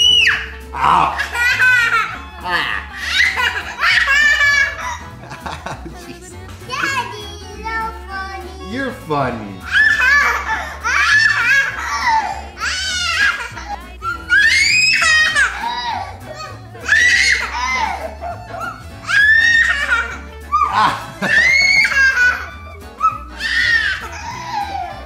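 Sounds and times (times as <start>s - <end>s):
toddler giggling and squealing: 0.0s - 5.7s, 6.6s - 8.3s, 9.6s - 25.0s
man laughing: 0.7s - 7.0s, 17.6s - 22.8s.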